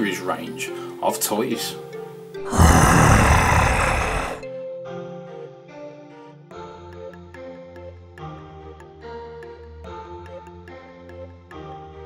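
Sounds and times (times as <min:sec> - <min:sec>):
harsh monster voice: 0:02.4 - 0:04.4.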